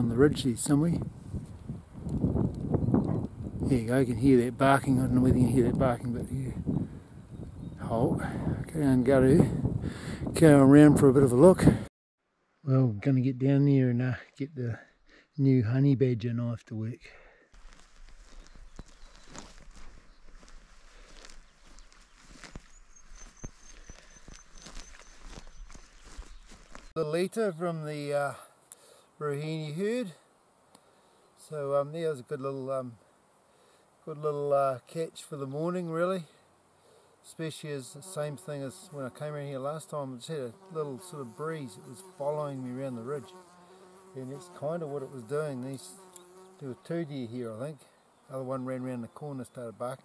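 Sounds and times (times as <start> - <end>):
footsteps through grass: 17.6 - 27.0.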